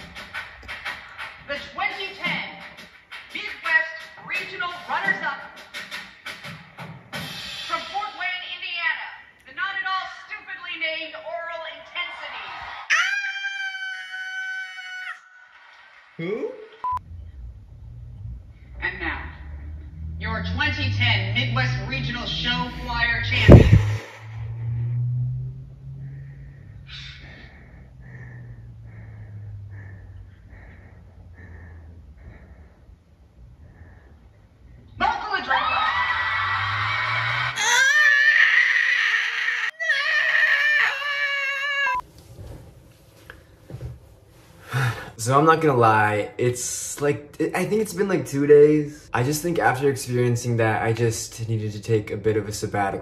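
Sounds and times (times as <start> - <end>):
music from television: 0.0 - 8.0
person screaming high-pitched: 12.9 - 15.2, 35.5 - 42.0
audience cheering and applause: 35.4 - 38.3.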